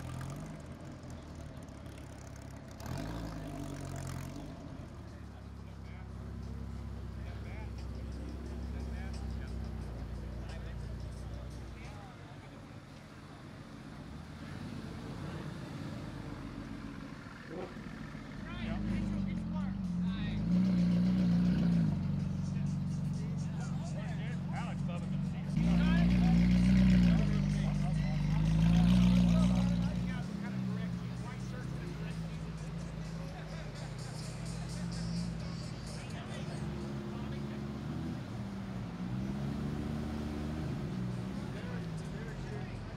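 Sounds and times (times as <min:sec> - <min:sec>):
sports car engines revving: 0:00.0 - 0:42.9.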